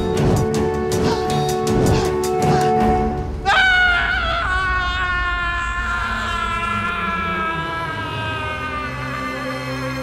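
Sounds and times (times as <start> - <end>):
man screaming: 3.4 - 10.0.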